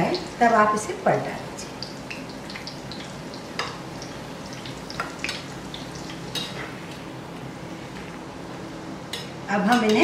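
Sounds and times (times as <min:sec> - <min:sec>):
food deep-frying in hot oil: 0:00.0 - 0:07.4.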